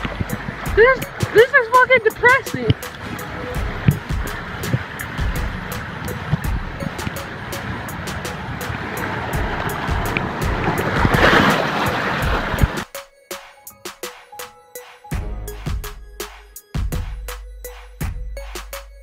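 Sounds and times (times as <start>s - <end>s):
rushing water: 0.0s - 14.5s
body sliding down water slide: 7.8s - 12.9s
body knocking on slide: 9.4s - 11.6s.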